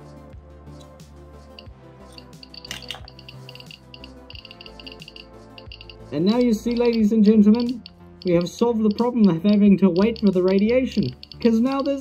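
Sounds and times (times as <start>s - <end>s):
background music: 0.0s - 12.0s
geiger counter beeping rapidly: 1.6s - 12.0s.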